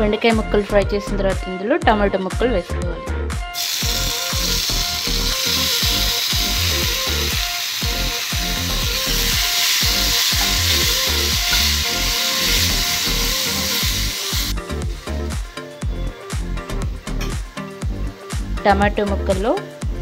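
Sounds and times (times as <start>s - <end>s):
background music with low beat: 0.0s - 20.0s
tomatoes sizzling in hot oil: 3.6s - 18.5s.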